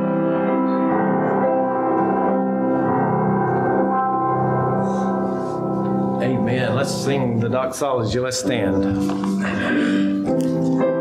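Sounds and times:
slow church keyboard chords: 0.0s - 11.0s.

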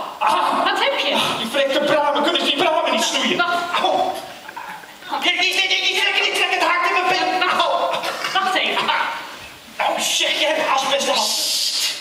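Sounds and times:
person's voice: 0.0s - 11.9s.

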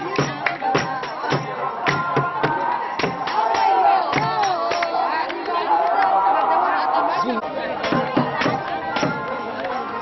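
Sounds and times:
women talking and calling out: 0.0s - 10.0s.

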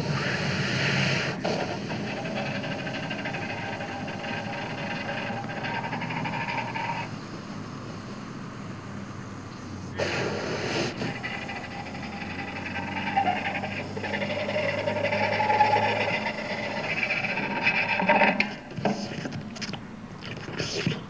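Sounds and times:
bowed objects grinding and whining: 0.0s - 20.2s
sharp clicks and scrapes: 10.0s - 21.0s.

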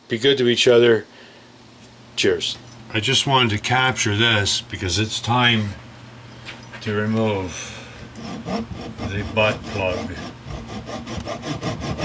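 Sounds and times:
hand saw rasping through wood: 8.2s - 12.0s.

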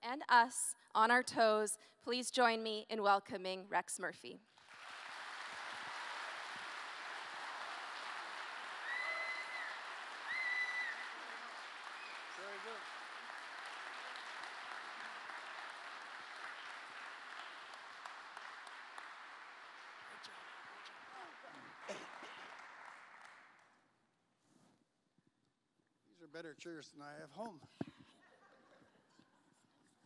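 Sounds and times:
audience applauding: 4.5s - 23.8s
high-pitched cheers: 7.4s - 12.8s.

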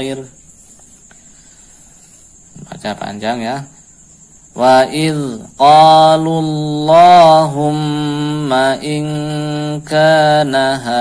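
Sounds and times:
man chanting: 0.0s - 0.4s, 2.5s - 3.8s, 4.5s - 11.0s.

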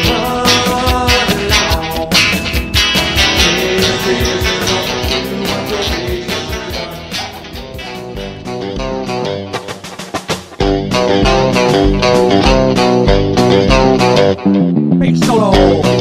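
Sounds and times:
electric guitar: 0.0s - 16.0s
live rock band instrumental: 0.0s - 16.0s.

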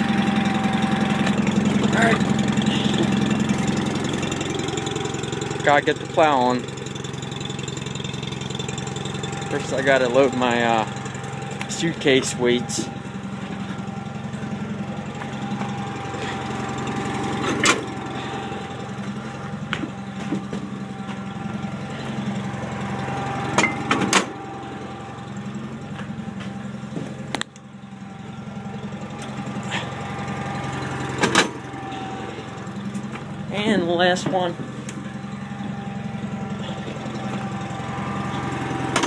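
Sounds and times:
tractor engine idling: 0.0s - 39.0s.

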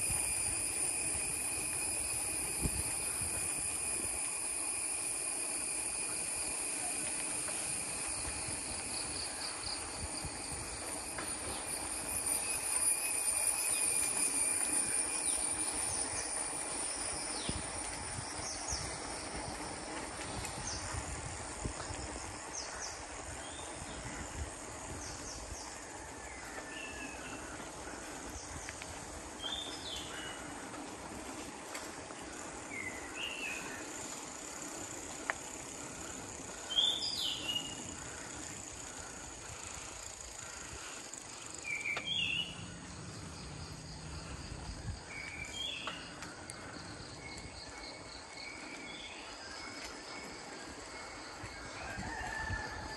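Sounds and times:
insects droning: 0.0s - 52.9s.

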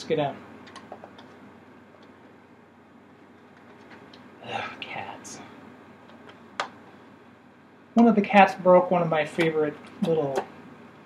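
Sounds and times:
person whispering: 4.4s - 5.6s.

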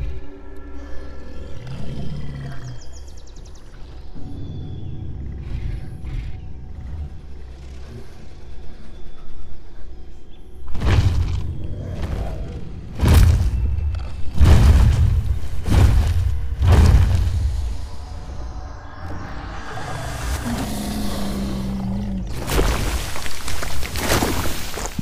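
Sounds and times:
low rumbling suspense score: 0.0s - 25.0s.

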